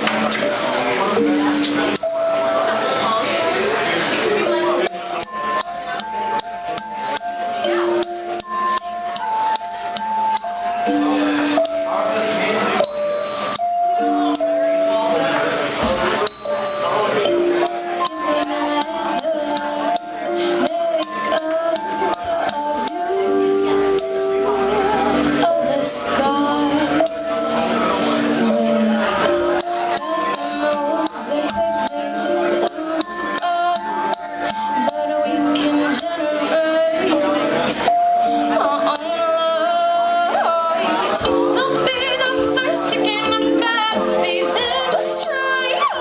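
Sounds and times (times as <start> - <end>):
desk bells ringing: 0.0 - 46.0.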